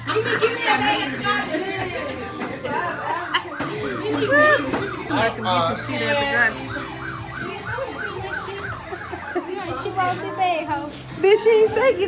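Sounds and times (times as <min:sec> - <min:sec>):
siren-like wail: 0:03.0 - 0:10.8.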